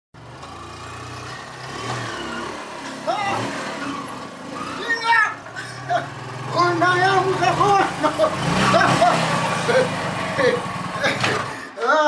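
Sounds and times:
small motorcycle engine running: 0.2s - 11.8s
voices: 3.0s - 12.0s.

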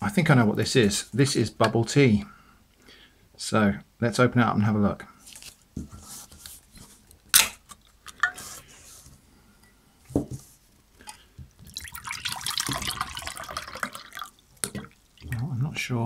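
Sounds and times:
liquid pouring into glass: 11.0s - 15.4s.

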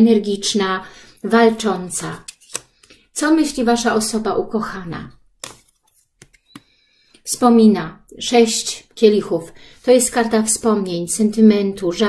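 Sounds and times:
card rustling: 2.1s - 3.0s, 5.4s - 6.7s.

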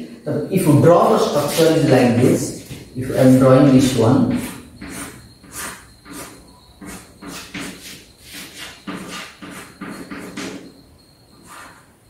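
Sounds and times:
chalk scratching on blackboard: 3.8s - 10.6s, 11.4s - 11.9s.

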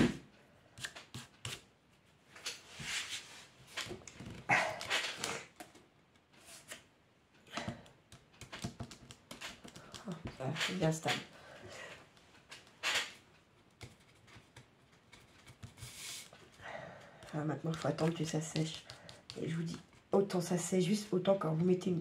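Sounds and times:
cardboard and paper handling: 17.2s - 20.1s.

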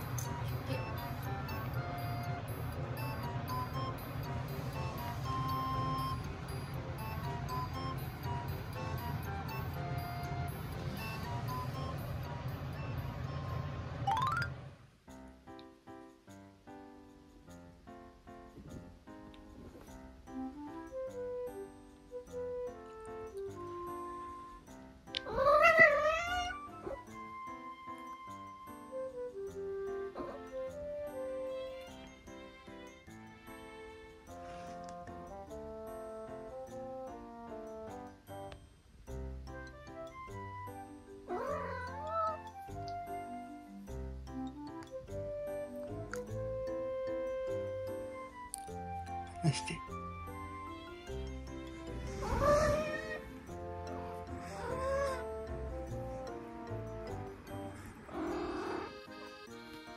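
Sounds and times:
soft background music: 0.0s - 59.9s
cat meowing: 25.2s - 27.0s, 41.3s - 42.5s, 52.1s - 53.4s, 54.4s - 55.3s.

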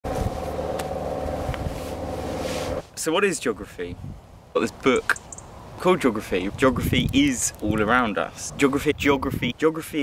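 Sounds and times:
steady motor drone: 0.1s - 2.8s.

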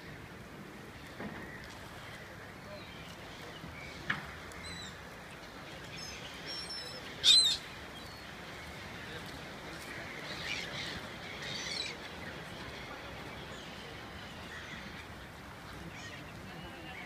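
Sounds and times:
gulls calling: 6.0s - 9.0s.

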